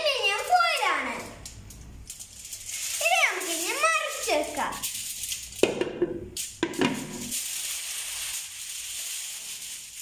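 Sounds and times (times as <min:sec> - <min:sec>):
child speaking: 0:00.0 - 0:01.4, 0:02.9 - 0:04.9.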